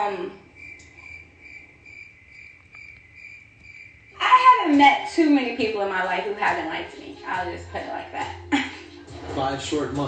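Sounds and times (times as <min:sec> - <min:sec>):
cricket-like chirping trill: 0:00.0 - 0:05.0.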